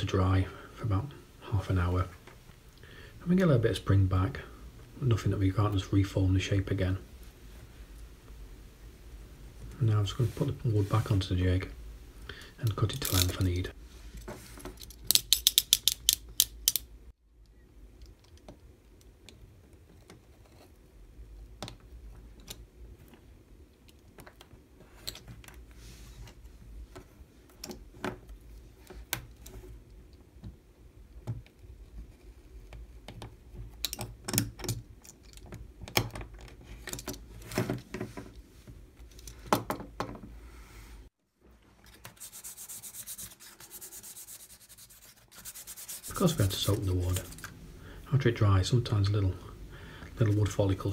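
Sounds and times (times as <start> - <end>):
utility knife blade ratcheting: 15.0 - 16.9
sandpaper rubbing wood: 42.1 - 47.3.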